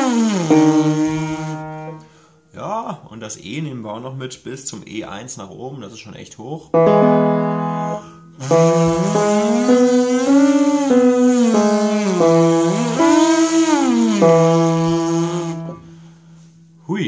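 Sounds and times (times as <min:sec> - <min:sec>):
brass lip buzz arpeggio: 0:00.0 - 0:02.1, 0:06.8 - 0:16.1
held keyboard note: 0:00.0 - 0:02.2, 0:06.8 - 0:16.1.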